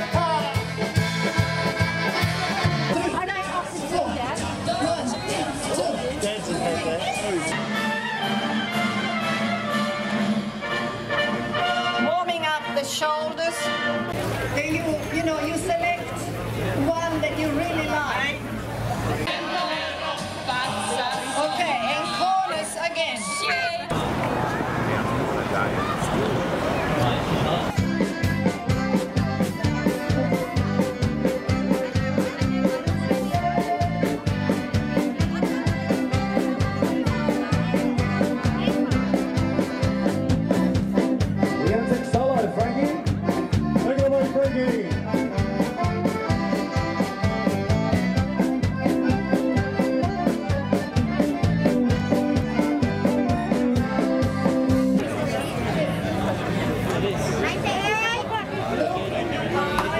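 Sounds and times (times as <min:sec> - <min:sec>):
accordion playing dance tune: 0:00.0 - 0:16.0, 0:27.5 - 0:56.0.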